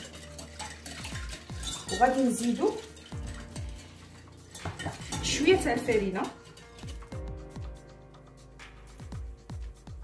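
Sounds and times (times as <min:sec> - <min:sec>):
fork clinking against glass: 0:00.0 - 0:07.1
fork stirring in glass bowl: 0:00.0 - 0:07.2
background music with low beat: 0:00.0 - 0:10.0.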